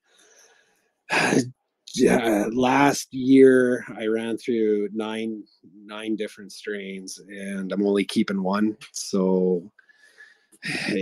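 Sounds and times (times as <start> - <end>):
man sighing: 1.1 - 1.5, 10.7 - 11.0.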